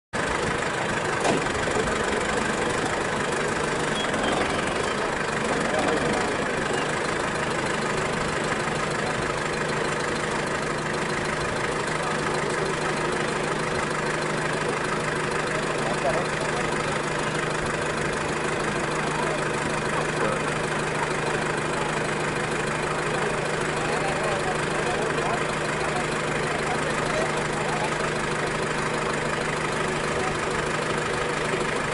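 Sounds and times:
vehicle engine idling: 0:00.1 - 0:31.9
faint voices: 0:01.8 - 0:31.9.

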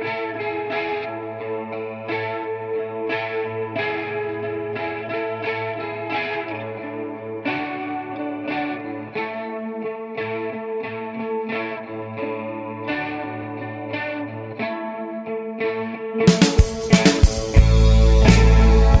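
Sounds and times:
electric guitar with chorus effect: 0:00.0 - 0:19.0.

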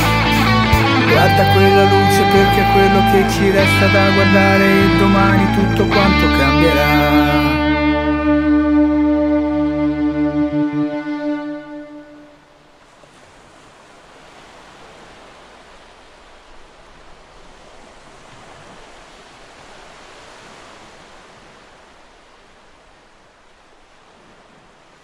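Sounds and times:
sea waves washing onto beach: 0:12.4 - 0:25.0.

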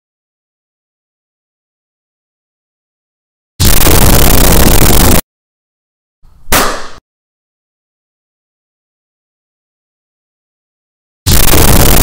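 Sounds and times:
loud dense noise burst: 0:03.6 - 0:05.2, 0:11.3 - 0:12.0.

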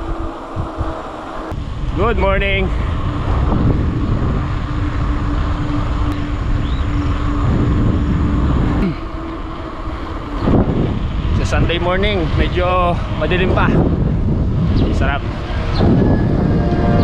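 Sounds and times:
wind rushing over microphone: 0:00.0 - 0:17.0
passing motor vehicle hum: 0:02.7 - 0:17.0.

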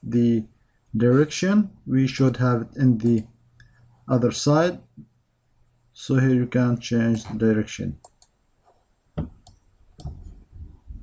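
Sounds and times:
faint low noise: 0:00.0 - 0:11.0
computer mouse clicks: 0:08.0 - 0:08.4.

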